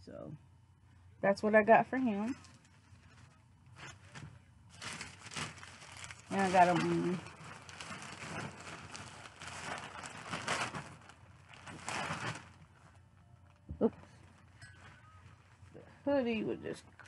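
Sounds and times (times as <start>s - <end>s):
hoodie fabric rustling: 2.3s - 12.8s.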